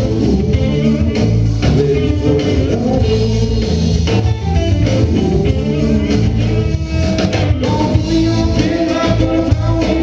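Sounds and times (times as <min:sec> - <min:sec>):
electric guitar: 0:00.0 - 0:10.0
rock band playing: 0:00.0 - 0:10.0.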